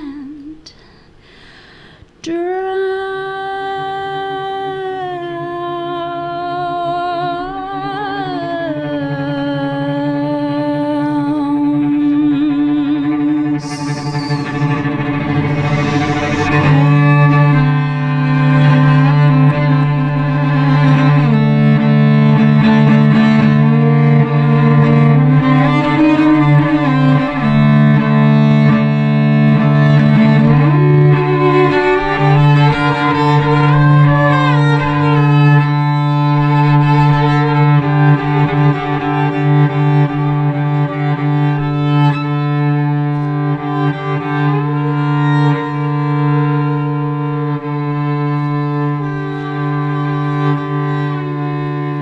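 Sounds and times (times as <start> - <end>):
woman singing vibrato note: 0.0 - 0.9, 9.6 - 18.0
bowed cello double stops: 11.6 - 52.0.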